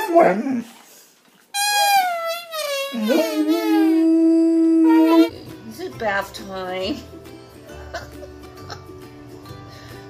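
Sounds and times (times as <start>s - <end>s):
high-pitched dog whine: 1.8s - 5.6s.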